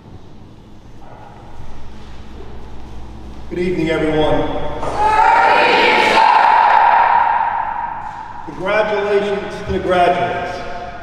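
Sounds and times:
crowd calling out in unison: 4.8s - 8.4s.

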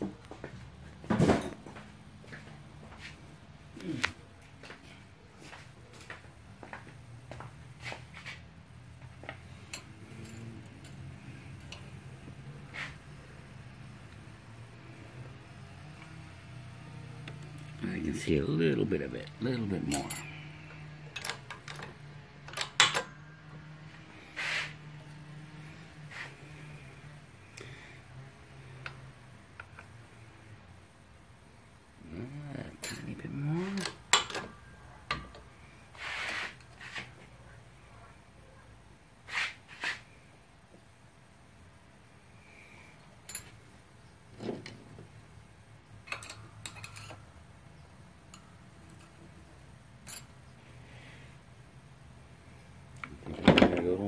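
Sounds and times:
metal parts clicking and knocking: 21.1s - 23.2s, 46.0s - 47.2s
squeal-like sliding sound: 24.4s - 24.8s.

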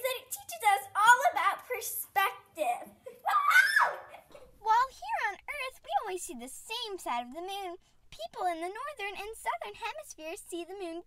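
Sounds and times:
girl speaking: 0.0s - 3.3s, 4.4s - 11.0s
girl squealing: 3.1s - 4.3s.

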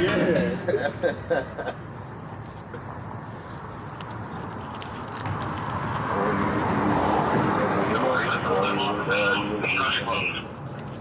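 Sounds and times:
vehicle passing: 0.0s - 10.4s.

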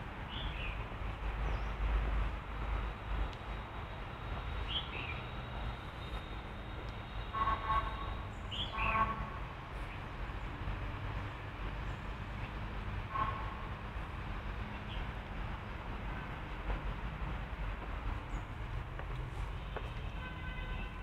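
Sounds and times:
distant city traffic rumble: 0.0s - 21.0s
vehicle horns honking: 7.1s - 9.4s, 19.6s - 21.0s.

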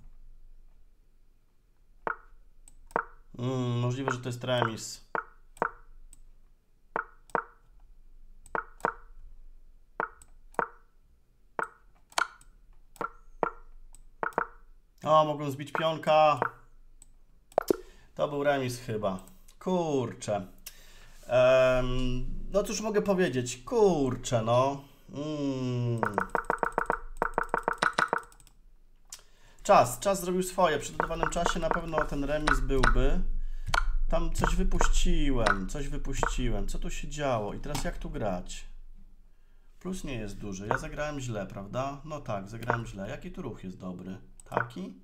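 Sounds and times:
chess move clicks: 2.0s - 3.3s, 4.0s - 6.3s, 7.0s - 7.8s, 8.4s - 9.2s, 10.0s - 10.9s, 11.6s - 14.7s, 15.7s - 17.8s, 26.0s - 29.3s, 30.8s - 36.4s, 40.7s - 40.9s, 42.6s - 43.0s, 44.4s - 44.9s.

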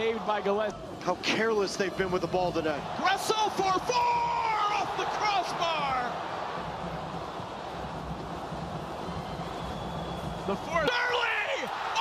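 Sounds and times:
stadium crowd hum: 0.0s - 12.0s.

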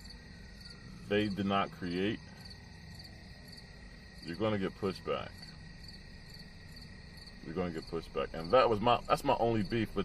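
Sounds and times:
crickets chirping: 0.0s - 10.0s
low steady hum: 0.0s - 10.0s.

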